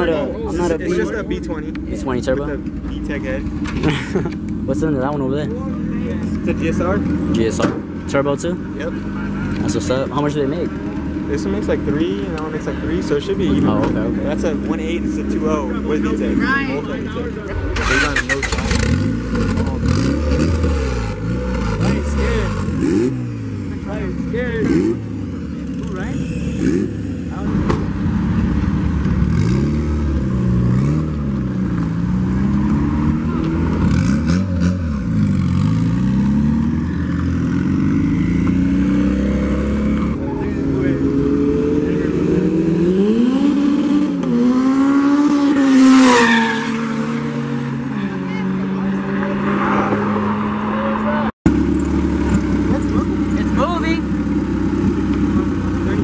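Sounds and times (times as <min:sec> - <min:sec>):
car engines revving: 0:00.0 - 0:56.0
car accelerating hard: 0:17.4 - 0:56.0.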